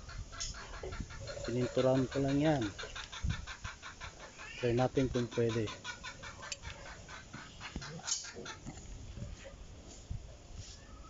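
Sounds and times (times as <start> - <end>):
chicken clucking: 0.0 - 9.6.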